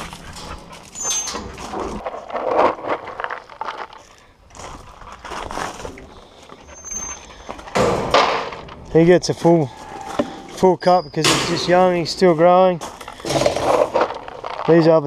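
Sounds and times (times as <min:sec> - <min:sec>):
wire-mesh gates rattling: 0:00.0 - 0:03.3, 0:07.7 - 0:14.4
high squeak: 0:00.9 - 0:01.6, 0:06.6 - 0:07.5, 0:09.4 - 0:11.5.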